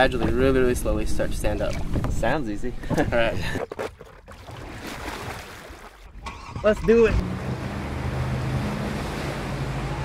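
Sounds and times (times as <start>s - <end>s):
wind: 0.0s - 10.0s
water rushing past boat: 3.5s - 10.0s.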